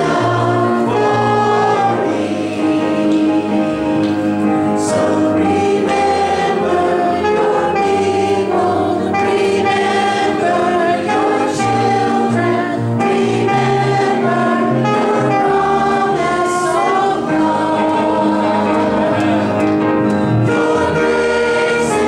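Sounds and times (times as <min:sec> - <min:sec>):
group singing into microphones: 0:00.0 - 0:22.0
guitar: 0:00.0 - 0:22.0.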